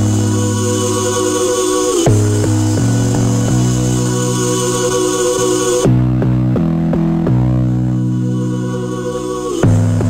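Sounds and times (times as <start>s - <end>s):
bass-heavy house music notes: 0.0s - 10.0s.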